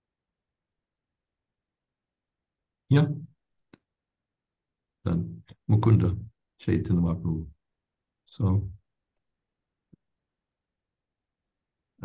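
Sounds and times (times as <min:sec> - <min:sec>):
man speaking: 0:02.9 - 0:03.4, 0:05.1 - 0:07.6, 0:08.3 - 0:08.8.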